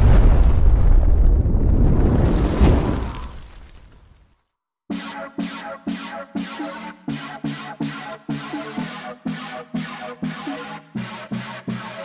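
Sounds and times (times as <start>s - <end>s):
explosion rumble: 0.0s - 3.6s.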